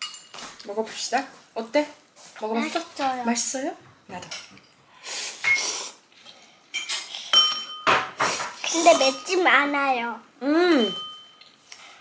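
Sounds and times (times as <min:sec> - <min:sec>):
cutlery clinking on ceramic bowls: 0:00.0 - 0:00.5, 0:06.2 - 0:09.5, 0:10.8 - 0:11.6.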